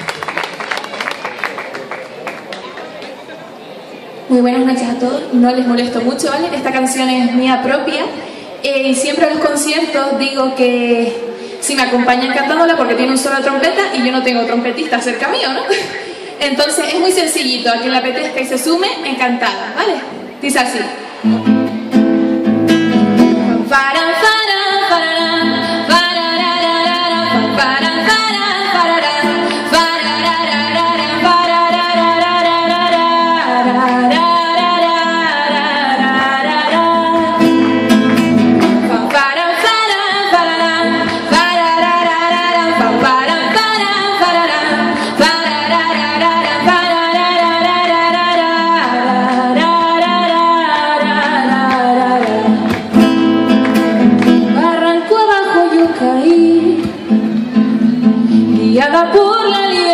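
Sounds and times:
classical guitar strumming: 21.2s - 59.0s
woman singing: 23.6s - 38.0s, 38.6s - 53.2s, 54.3s - 57.2s, 57.8s - 59.9s.

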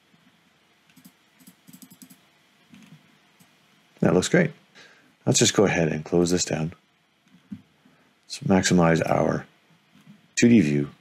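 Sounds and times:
computer mouse clicking: 0.9s - 3.5s.

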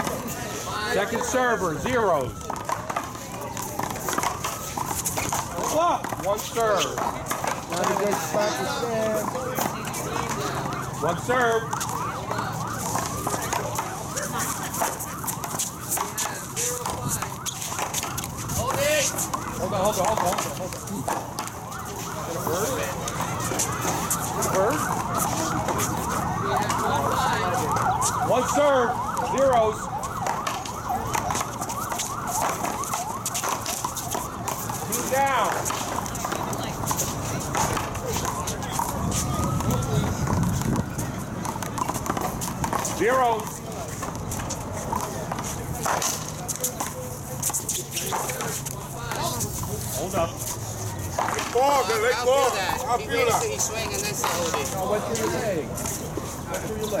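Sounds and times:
voices calling out and chattering: 0.0s - 57.0s.

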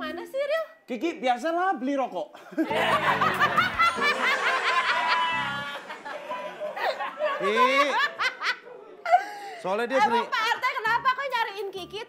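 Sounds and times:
woman laughing loudly: 2.6s - 9.3s.

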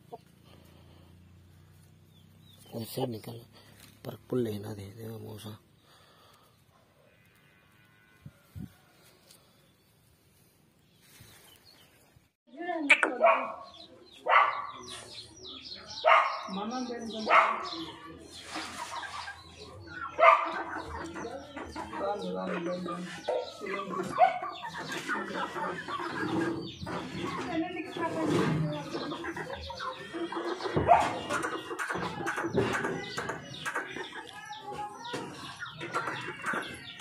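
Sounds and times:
chickens clucking and calling: 0.0s - 6.5s, 12.9s - 37.0s.

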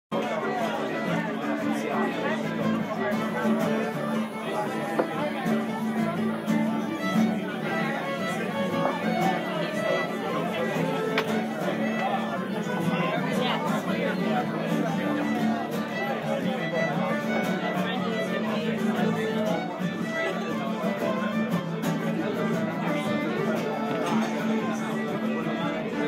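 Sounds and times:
fiddle folk music: 0.1s - 26.0s
people chattering: 0.1s - 26.0s.

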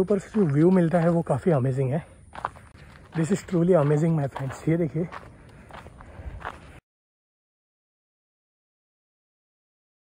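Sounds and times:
faint footsteps on dirt path: 0.0s - 6.8s.

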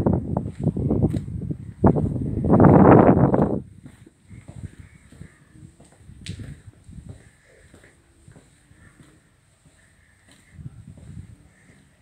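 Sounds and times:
footsteps: 0.4s - 12.0s
crow-like bird calling: 4.2s - 5.8s, 8.7s - 10.6s, 11.4s - 12.0s.

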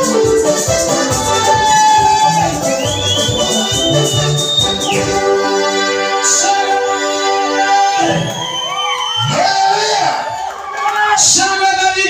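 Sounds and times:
drum and bass beat: 0.0s - 5.5s
electronic keyboard: 0.0s - 8.4s.

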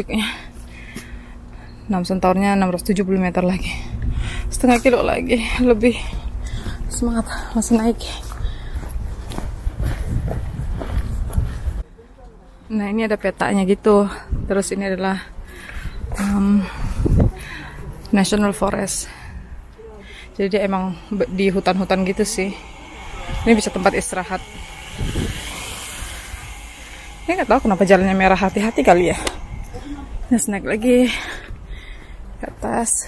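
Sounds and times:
steady low rumble: 18.9s - 33.0s.

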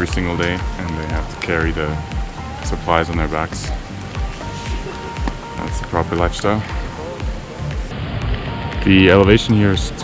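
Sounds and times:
man speaking: 0.0s - 7.4s, 8.8s - 10.0s
light rain hiss: 0.0s - 10.0s
music with low beat: 0.0s - 10.0s.

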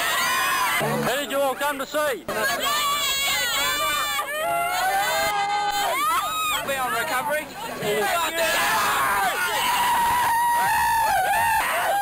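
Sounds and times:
young people screaming and yelling: 0.0s - 0.8s, 2.4s - 7.0s, 7.7s - 12.0s.

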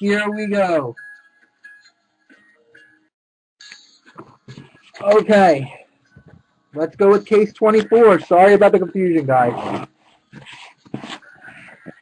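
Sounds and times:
cardboard scraping: 9.4s - 11.3s.

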